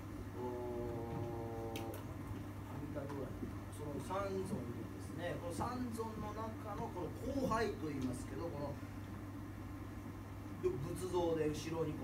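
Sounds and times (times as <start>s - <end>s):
man holding a drawn-out vowel: 0.4s - 2.0s.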